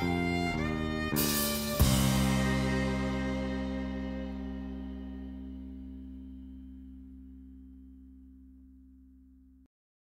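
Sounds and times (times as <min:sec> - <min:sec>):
guitar chord ringing out: 0:00.0 - 0:09.6.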